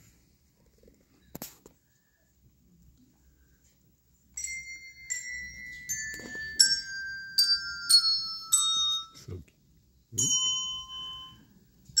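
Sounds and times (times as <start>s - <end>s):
handbells ringing: 4.4s - 9.3s, 10.2s - 12.0s.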